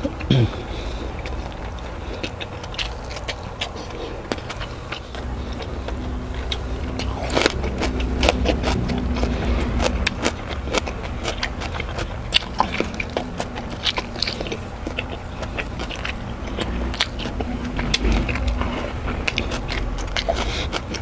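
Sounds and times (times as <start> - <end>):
wet mouth chewing sounds: 0.0 - 21.0
cucumber crunching: 1.2 - 21.0.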